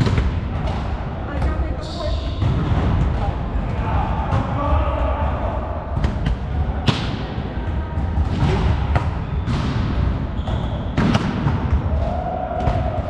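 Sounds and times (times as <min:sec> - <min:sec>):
volleyball smacks echoing: 0:00.0 - 0:01.7, 0:02.4 - 0:13.0.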